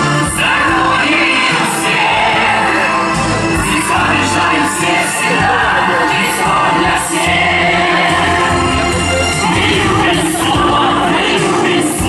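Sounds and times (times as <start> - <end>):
amplified instrumental accompaniment: 0.0 - 12.0
group singing in chorus: 0.0 - 12.0.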